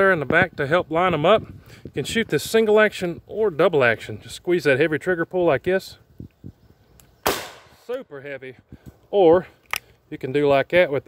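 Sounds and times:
shotgun shot: 0:07.2 - 0:07.9.

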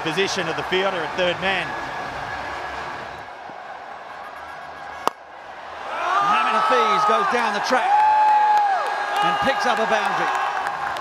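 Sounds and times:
stadium crowd noise: 0:00.0 - 0:11.0
cricket bat striking ball: 0:04.3 - 0:05.3.

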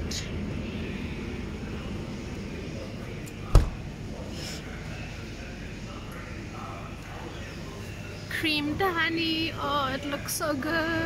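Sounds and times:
refrigeration hum and hiss: 0:00.0 - 0:11.0.

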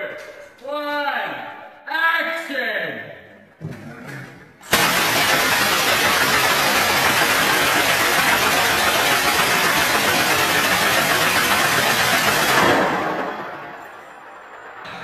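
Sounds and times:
automatic rifle fire: 0:04.7 - 0:13.9.

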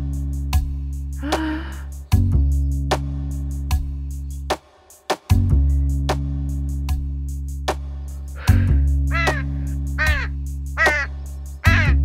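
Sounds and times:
background music with low drone: 0:00.0 - 0:12.0
crow cawing: 0:08.4 - 0:12.0.

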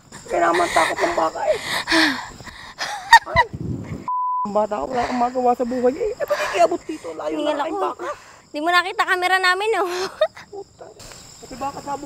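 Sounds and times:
censor bleep: 0:04.1 - 0:04.6.

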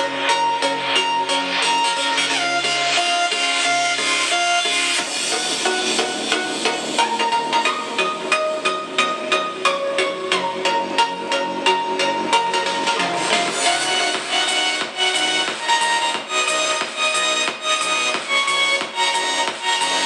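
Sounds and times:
synth music with steady beat: 0:00.0 - 0:20.0.

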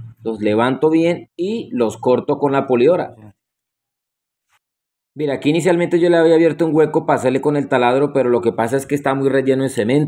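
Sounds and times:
man speaking: 0:00.0 - 0:03.4, 0:05.2 - 0:10.0.

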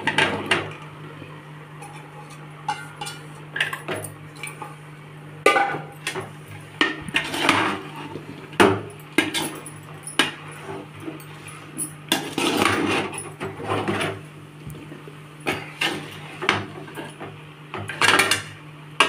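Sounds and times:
steady low hum: 0:00.0 - 0:19.0
metal spoon scraping a pot: 0:01.8 - 0:03.3, 0:07.1 - 0:08.0.

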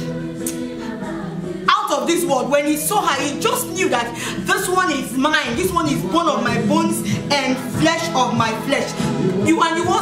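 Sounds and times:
sustained chords with choir-like voices: 0:00.0 - 0:10.0
woman talking: 0:01.7 - 0:10.0.

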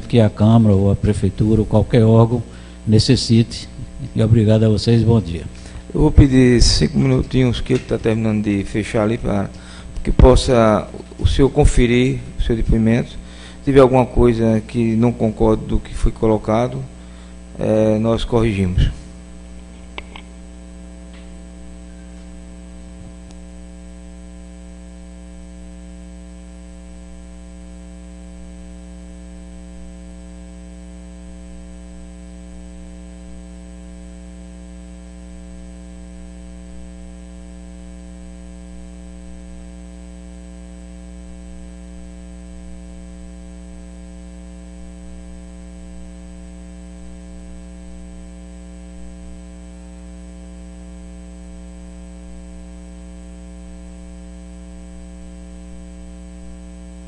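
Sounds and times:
electrical mains hum: 0:00.0 - 0:57.0.

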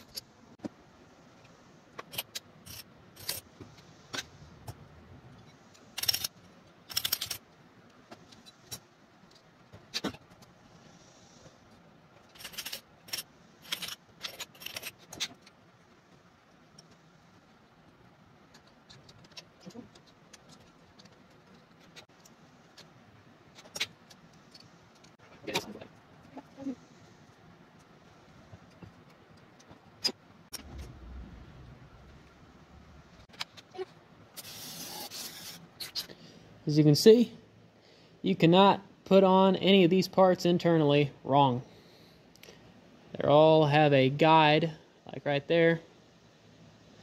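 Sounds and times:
metal parts clinking and tapping: 0:06.9 - 0:07.4, 0:12.2 - 0:15.5.

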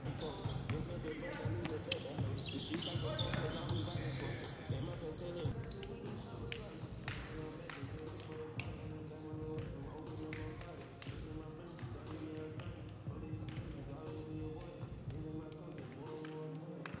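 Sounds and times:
basketballs bouncing on gym floor: 0:00.0 - 0:15.9
music: 0:00.0 - 0:17.0
voices: 0:00.0 - 0:17.0.

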